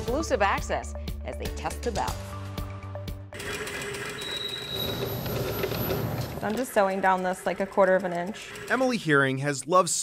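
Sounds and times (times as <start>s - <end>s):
sewing machine stitching fast: 3.4s - 9.6s.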